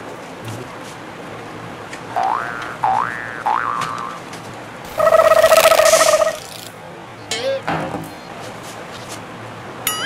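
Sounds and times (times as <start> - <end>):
toy gun rising chirps: 4.9 - 6.7.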